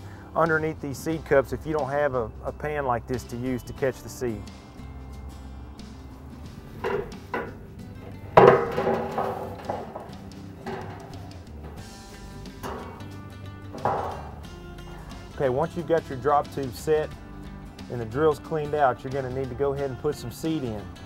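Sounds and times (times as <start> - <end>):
background music: 0.0 - 21.0
metal tubes clanking into pan: 6.8 - 15.4.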